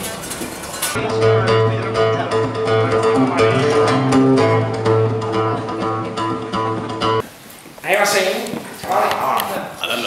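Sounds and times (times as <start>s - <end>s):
strummed acoustic guitar: 0.7s - 7.2s.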